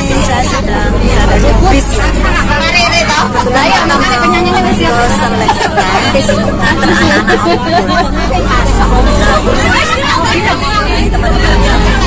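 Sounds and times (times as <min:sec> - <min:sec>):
bus engine low rumble: 0:00.0 - 0:12.0
voices chattering: 0:00.0 - 0:12.0.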